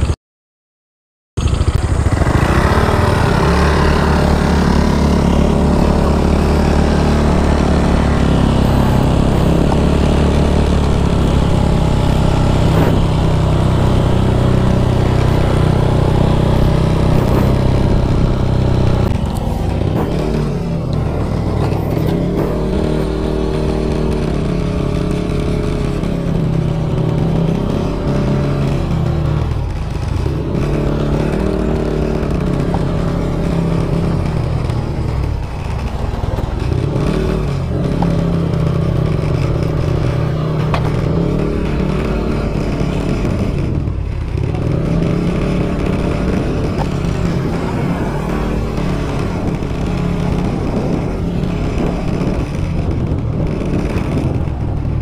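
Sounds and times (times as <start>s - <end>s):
motorcycle engine revving: 1.4s - 55.0s.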